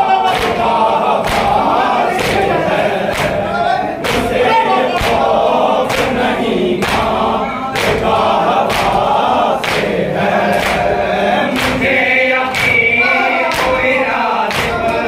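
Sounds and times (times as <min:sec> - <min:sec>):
men chanting a lament in unison: 0:00.0 - 0:15.0
chest-beating slaps: 0:00.3 - 0:04.4, 0:05.0 - 0:15.0.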